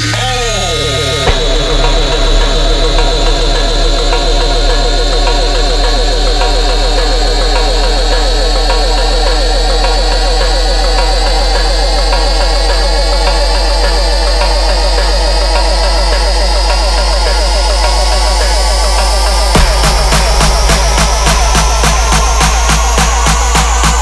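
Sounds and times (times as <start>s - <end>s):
deep sub-bass: 0.0s - 24.0s
rippling synth bass: 0.0s - 24.0s.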